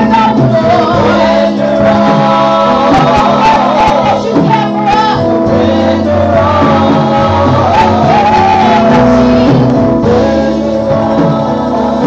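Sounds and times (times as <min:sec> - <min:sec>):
gospel singing voices: 0:00.0 - 0:12.0
sustained instrumental backing: 0:00.0 - 0:12.0.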